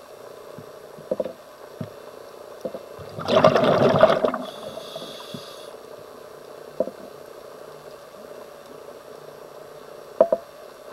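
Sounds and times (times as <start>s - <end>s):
bubbles rushing underwater: 3.0s - 4.6s
regulator hiss: 4.3s - 10.9s.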